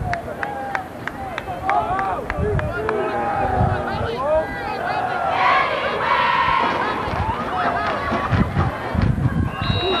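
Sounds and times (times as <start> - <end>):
crowd shouting and yelling: 0.0 - 10.0.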